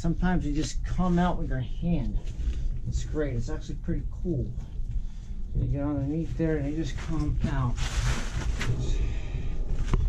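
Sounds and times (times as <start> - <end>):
rustling and rubbing: 5.8 - 10.0.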